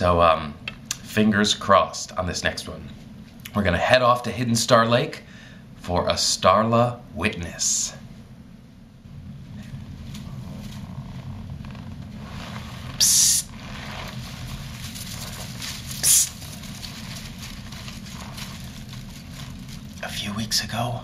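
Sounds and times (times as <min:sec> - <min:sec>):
low hum: 0:00.0 - 0:21.0
dry grass stalks rustling: 0:10.0 - 0:21.0.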